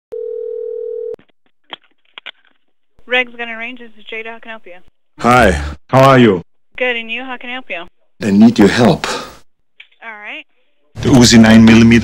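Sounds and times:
telephone ringing tone: 0:00.1 - 0:01.2.

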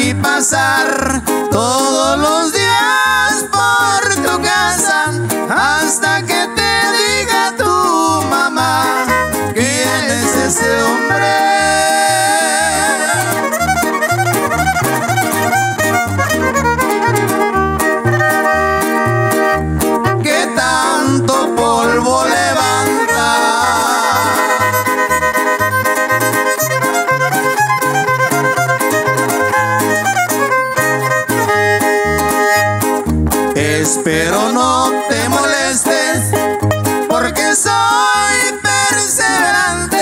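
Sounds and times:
strummed guitar chords: 0:00.0 - 0:40.0
violin melody: 0:02.4 - 0:40.0
steady bass pulse: 0:08.6 - 0:30.2.

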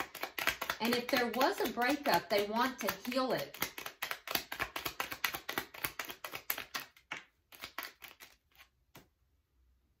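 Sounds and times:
cards being shuffled: 0:00.0 - 0:09.2.

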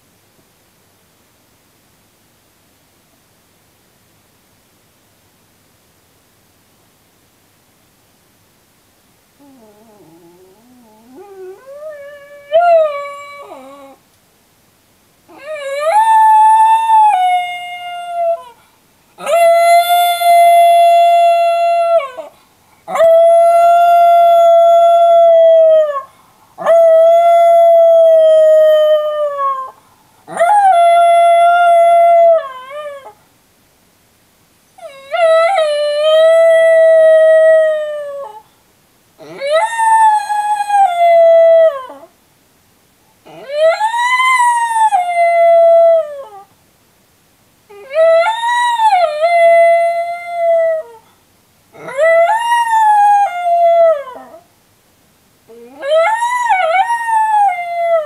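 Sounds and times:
dog howling: 0:09.4 - 0:14.0, 0:15.3 - 0:18.6, 0:19.2 - 0:22.3, 0:39.2 - 0:42.1, 0:43.3 - 0:46.5, 0:47.7 - 0:51.0, 0:51.8 - 0:54.4, 0:55.5 - 0:58.0.

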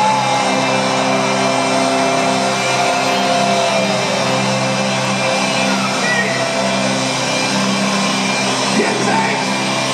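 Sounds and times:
crowd noise: 0:00.0 - 0:09.9.

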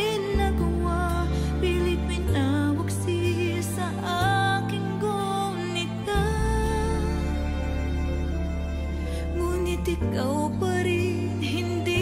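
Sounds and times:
woman singing: 0:00.0 - 0:07.8, 0:09.3 - 0:12.0.

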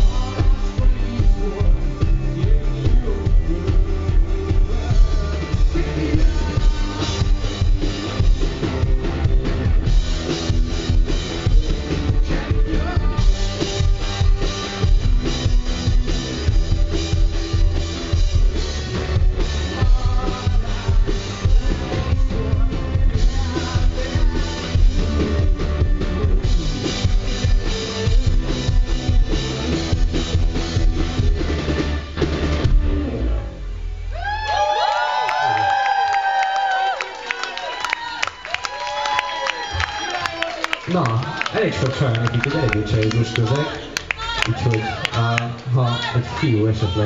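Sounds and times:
drum kit beating: 0:00.0 - 0:33.2, 0:38.6 - 0:45.5
live pop-rock band playing: 0:00.0 - 0:33.9
low bass line: 0:00.0 - 0:35.7
audience cheering: 0:34.1 - 0:47.0.

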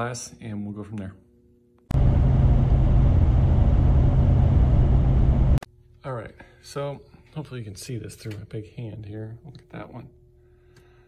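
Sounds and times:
car cabin road rumble: 0:01.9 - 0:05.6.

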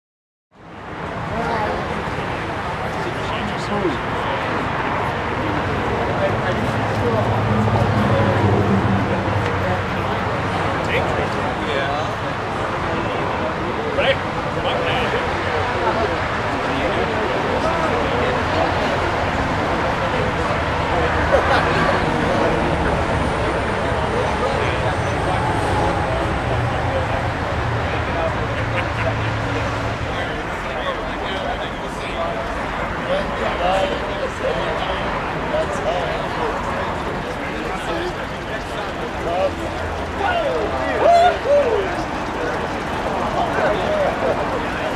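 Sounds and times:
people chattering: 0:00.6 - 0:44.9
people talking: 0:00.6 - 0:44.9
low engine hum: 0:01.1 - 0:13.8, 0:17.2 - 0:31.2.

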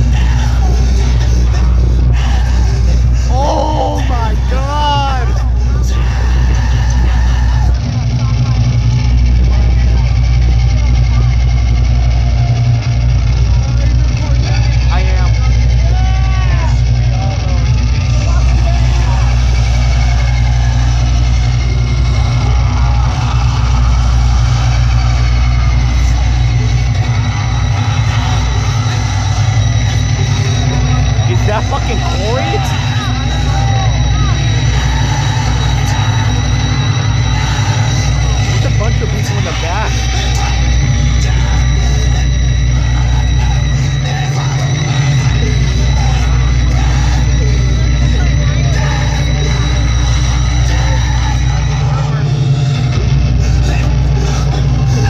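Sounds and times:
crowd voices: 0:00.0 - 0:55.0
deep droning music over pa: 0:00.0 - 0:55.0
voice calling with gliding pitch: 0:03.1 - 0:07.8, 0:30.4 - 0:40.7.

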